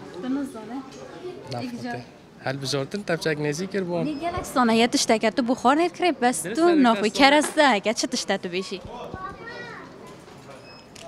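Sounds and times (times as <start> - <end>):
woman asking a question: 4.0 - 8.8.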